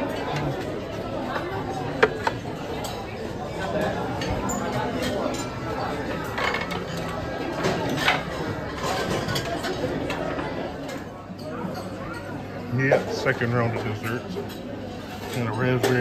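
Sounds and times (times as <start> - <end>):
many voices talking: 0.0 - 16.0
murmur of diners chatting: 0.0 - 16.0.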